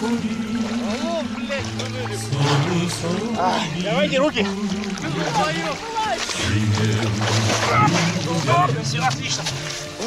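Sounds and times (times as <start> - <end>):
water sloshing and splashing: 0.0 - 10.0.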